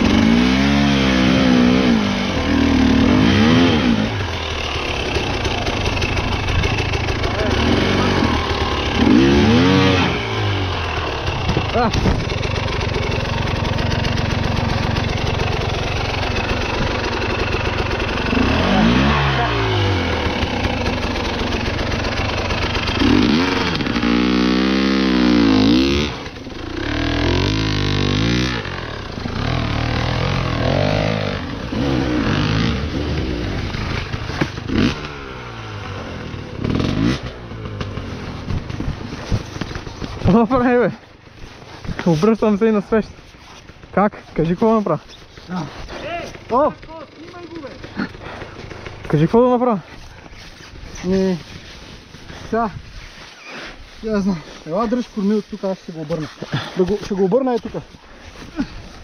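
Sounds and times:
motorcycle engine revving: 0:00.0 - 0:40.8, 0:43.5 - 0:52.8.

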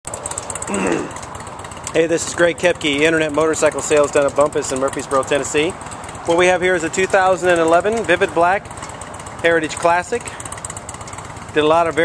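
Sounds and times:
low mechanical rumble: 0:00.1 - 0:12.0
man clearing his throat: 0:00.7 - 0:01.2.

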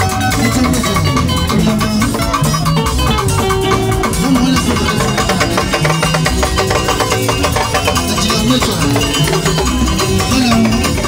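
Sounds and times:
live band with drums and bass: 0:00.0 - 0:11.0.

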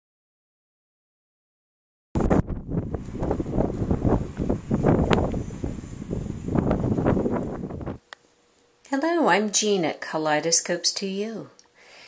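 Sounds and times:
wind buffeting microphone: 0:02.2 - 0:08.0.

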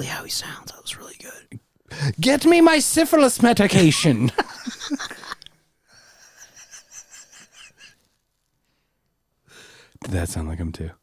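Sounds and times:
faint breath: 0:08.6 - 0:10.0.

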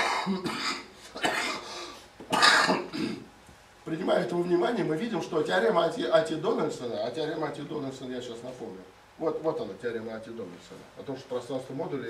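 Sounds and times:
person coughing: 0:00.0 - 0:03.3.

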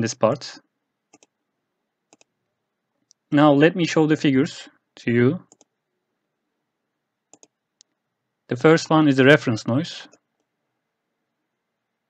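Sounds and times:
computer mouse clicks: 0:01.1 - 0:01.4, 0:02.1 - 0:02.3, 0:05.5 - 0:05.7, 0:07.3 - 0:08.0.

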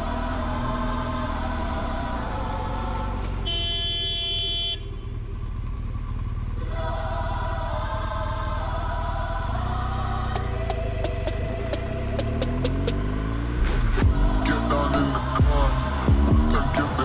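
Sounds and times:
motorcycle engine running: 0:00.0 - 0:17.0
vehicle horn: 0:03.4 - 0:05.2.

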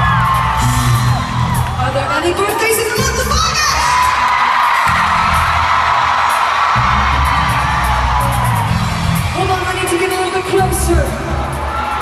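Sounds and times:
crowd screaming and cheering: 0:00.0 - 0:12.0
loud live pop music: 0:00.0 - 0:12.0.

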